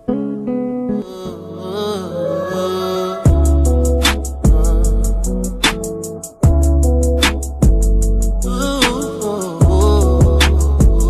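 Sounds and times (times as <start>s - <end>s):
slow wavering background music: 0.0s - 11.0s.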